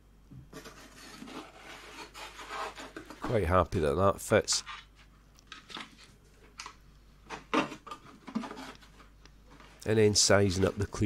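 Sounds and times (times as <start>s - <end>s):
foam scraping against foam: 0.6s - 3.2s.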